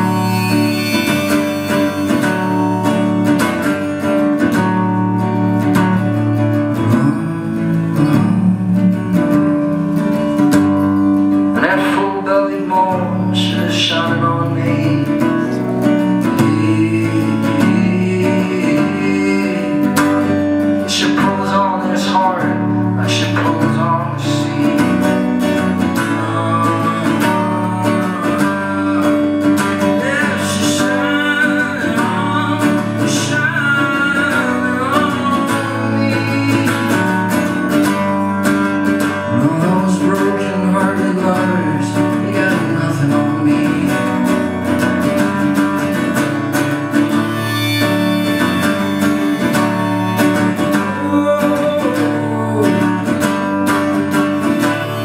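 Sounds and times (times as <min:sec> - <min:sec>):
acoustic guitar strumming: 0:00.0 - 0:55.0
man singing: 0:00.0 - 0:55.0.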